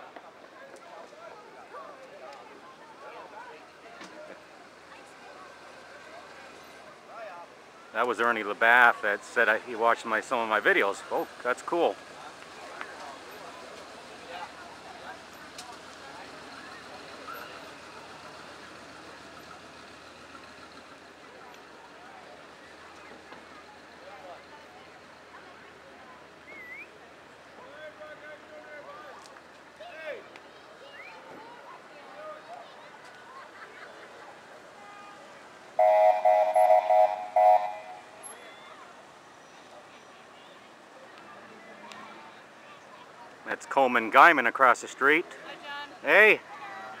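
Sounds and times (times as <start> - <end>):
low chatter of onlookers: 0.0 - 47.0
vehicle horn honking: 35.8 - 38.3.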